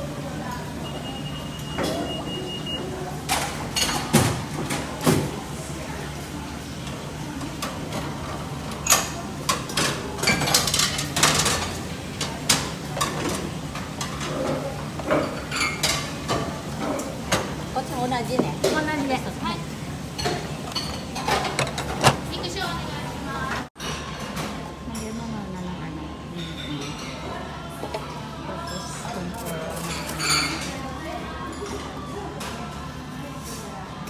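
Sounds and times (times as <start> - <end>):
dishes and utensils clinking: 3.2 - 5.3, 7.4 - 17.6, 20.0 - 22.4, 26.3 - 33.8.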